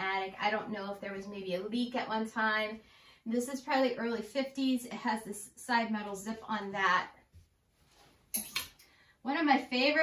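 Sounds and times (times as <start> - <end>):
fabric rustle: 7.3 - 8.5
wire hanger clicks on metal rack: 8.3 - 8.9.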